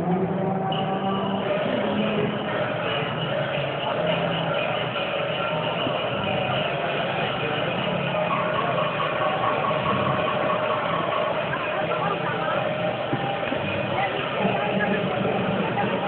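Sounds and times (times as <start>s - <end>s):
music playing: 0.0s - 16.0s
street din: 0.0s - 16.0s.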